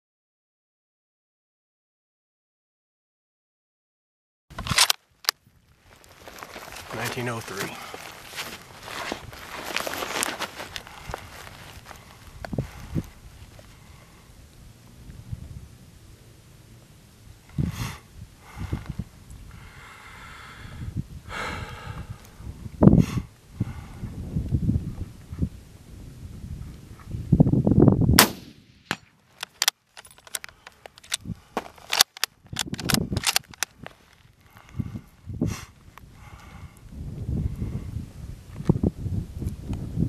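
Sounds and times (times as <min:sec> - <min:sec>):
light clicks and scuffs: 0:05.9 - 0:13.1
rifle shot: 0:28.2 - 0:29.2.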